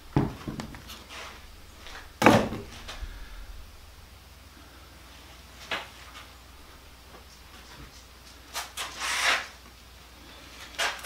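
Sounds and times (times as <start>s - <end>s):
wooden board knocks: 0.2s - 0.8s, 2.2s - 2.7s
wooden board scraping: 8.5s - 9.6s.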